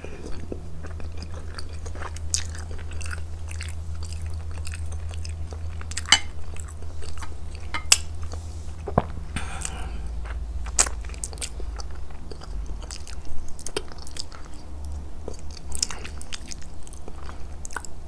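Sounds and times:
chewing with wet mouth clicks: 0.0 - 18.0
steady low hum: 0.0 - 18.0.

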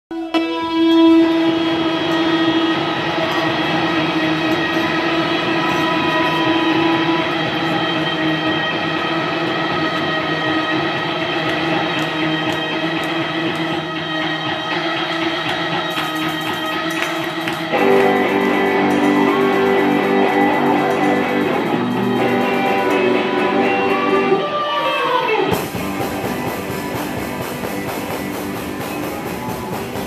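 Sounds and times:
electric guitar drone: 0.1 - 30.0.

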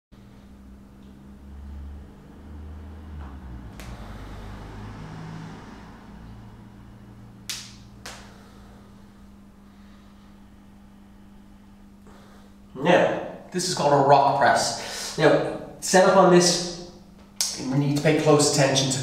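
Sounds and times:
steady low hum: 0.2 - 19.0.

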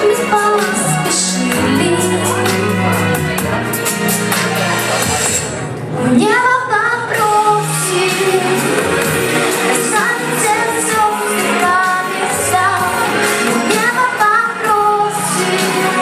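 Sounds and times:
woman singing into microphone: 0.0 - 3.0, 6.0 - 16.0
backing music with beat: 0.0 - 6.0, 7.0 - 16.0.

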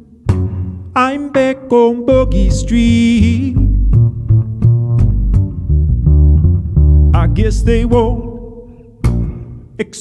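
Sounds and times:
plucked double bass: 0.2 - 9.8.

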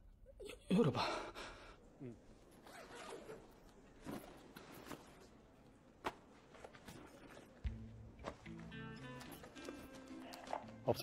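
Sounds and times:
rustling of things handled: 2.4 - 7.6
zipper: 2.6 - 5.0.

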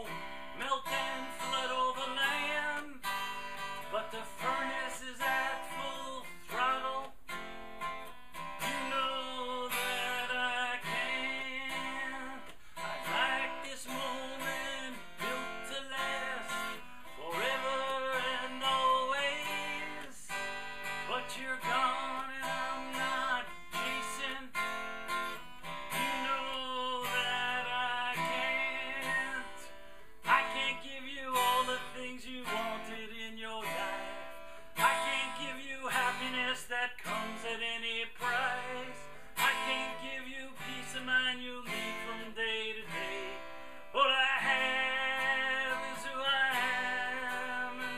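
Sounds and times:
man singing: 0.0 - 7.4, 8.4 - 47.9
acoustic guitar strumming: 0.0 - 47.9.

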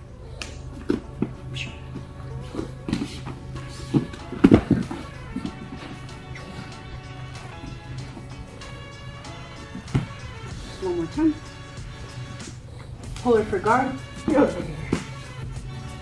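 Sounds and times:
background music: 0.0 - 16.0
body thudding onto mats: 9.8 - 10.2.

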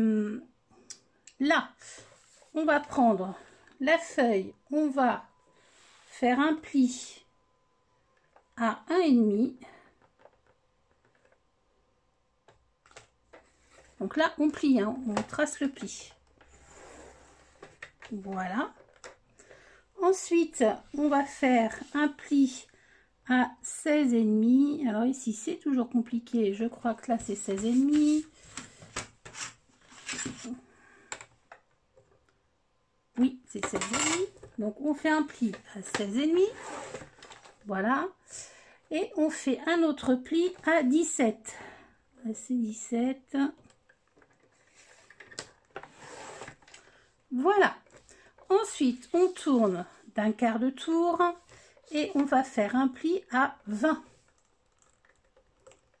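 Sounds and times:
faint scraping and rustling: 1.8 - 3.8, 5.6 - 6.4, 12.9 - 19.2, 26.7 - 30.8, 33.6 - 37.7, 43.6 - 47.1, 47.8 - 52.7.

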